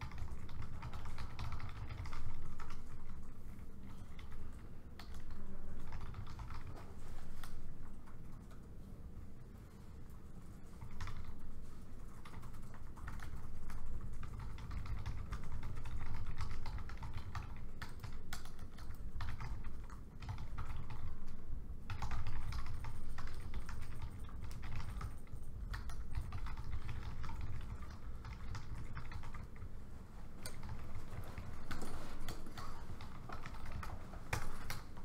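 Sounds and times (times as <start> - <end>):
laptop keyboard typing: 0.0 - 8.8, 10.2 - 35.0
low room rumble: 0.0 - 35.0.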